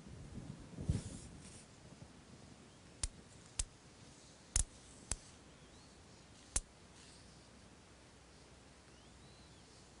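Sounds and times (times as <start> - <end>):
magnets clicking together: 4.6 - 5.2.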